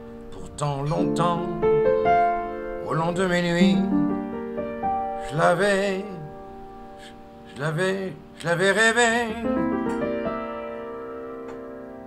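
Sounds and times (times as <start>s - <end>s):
piano chord ringing: 0.0s - 12.0s
soft piano note: 9.5s - 12.0s.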